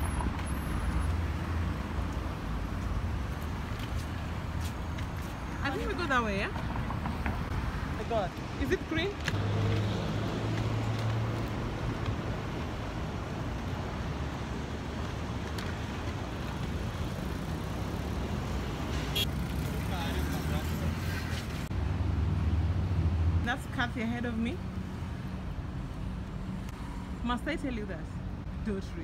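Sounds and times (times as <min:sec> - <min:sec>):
road traffic: 0:00.0 - 0:29.0.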